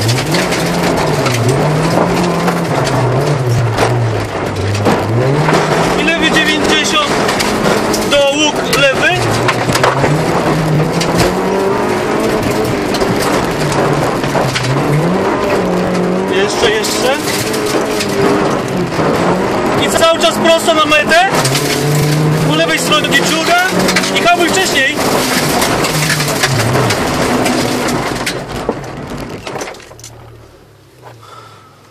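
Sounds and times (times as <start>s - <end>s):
car engine revving: 0.0s - 31.9s
tyres crunching over gravel: 0.0s - 31.9s.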